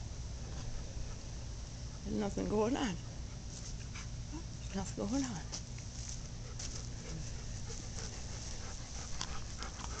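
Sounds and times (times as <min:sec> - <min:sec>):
steady low rumble: 0:00.0 - 0:10.0
dogs panting: 0:00.4 - 0:04.2, 0:06.2 - 0:10.0.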